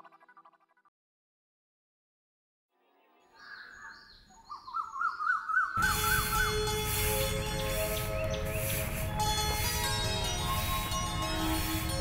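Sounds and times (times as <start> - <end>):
bird chirping: 2.9 - 9.1
music with sustained notes: 5.8 - 12.0.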